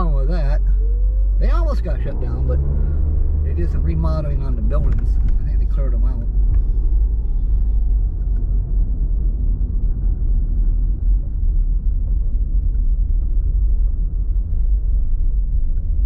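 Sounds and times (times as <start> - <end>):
car engine rumble: 0.0 - 16.0
road noise: 0.0 - 16.0.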